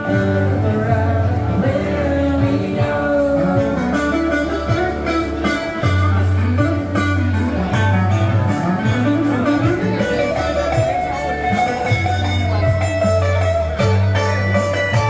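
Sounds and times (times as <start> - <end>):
electric guitar melody: 0.0 - 15.0
low sustained bass notes: 0.0 - 15.0.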